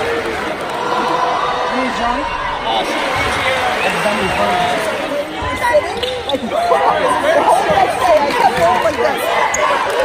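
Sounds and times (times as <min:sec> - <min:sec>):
crowd talking: 0:00.0 - 0:10.0.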